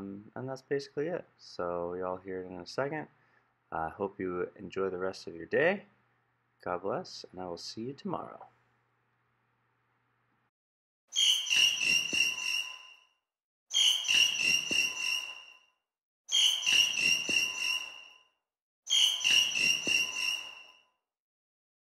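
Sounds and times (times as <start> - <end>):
bird call with reverb: 11.2 - 13.0, 13.7 - 15.6, 16.3 - 18.2, 18.9 - 20.8.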